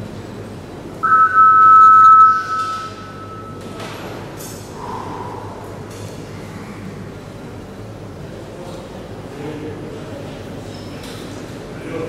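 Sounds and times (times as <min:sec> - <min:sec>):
electronic warning tone: 0:01.0 - 0:03.8.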